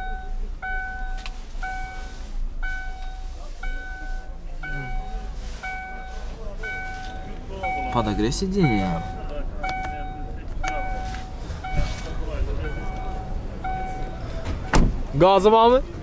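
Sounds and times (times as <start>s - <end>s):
car warning chime beeping: 0.0s - 14.8s.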